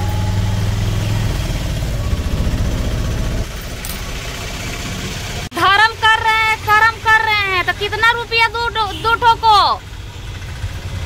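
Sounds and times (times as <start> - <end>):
auto-rickshaw engine running: 0.0 - 11.0.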